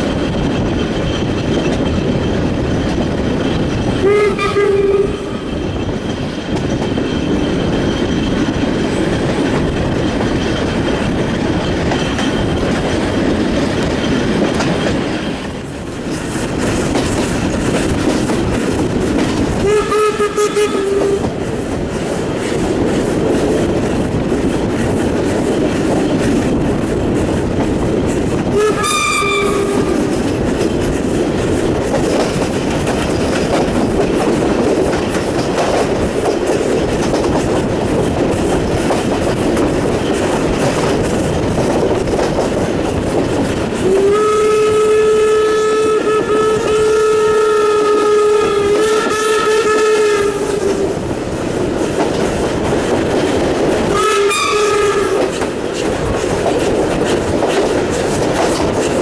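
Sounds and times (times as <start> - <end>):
train wheels rumbling on rail: 0.0 - 59.0
steam locomotive whistle: 4.0 - 5.5, 19.6 - 21.4, 28.5 - 30.2, 43.8 - 51.0, 53.9 - 55.4.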